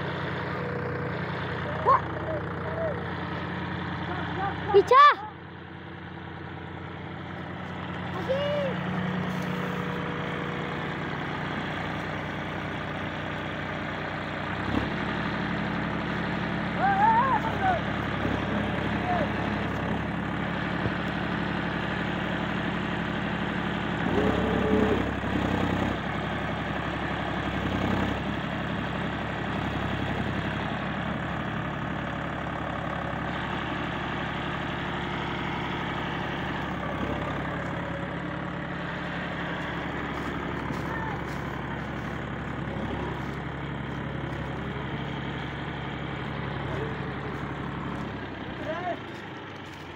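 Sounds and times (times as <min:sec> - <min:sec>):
tractor diesel engine under load: 0:00.0 - 0:49.9.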